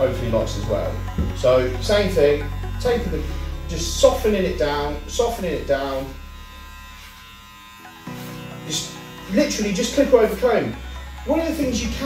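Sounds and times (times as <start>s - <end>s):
electric hair clippers humming: 0.0s - 12.0s.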